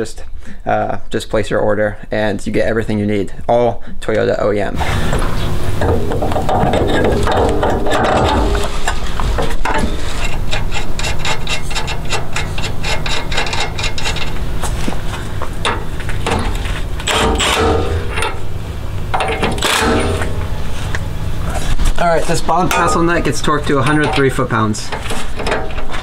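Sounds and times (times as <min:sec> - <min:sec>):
metal tools scraping and knocking: 0:05.1 - 0:14.9, 0:15.6 - 0:18.5, 0:19.1 - 0:20.9, 0:22.3 - 0:26.0
hand ratchet clicking: 0:09.7 - 0:14.4, 0:15.6 - 0:18.4, 0:19.1 - 0:20.5.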